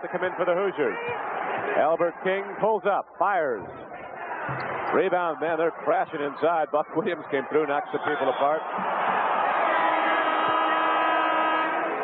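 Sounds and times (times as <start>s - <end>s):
arena crowd noise: 0.0s - 12.0s
electric horn tone: 9.8s - 12.0s.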